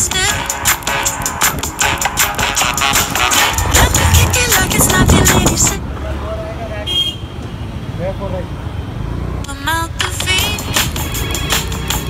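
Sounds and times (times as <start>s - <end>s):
background music: 0.0s - 5.8s, 9.9s - 12.0s
scooter rumble in traffic: 0.0s - 12.0s
horn-like toot: 1.8s - 5.1s.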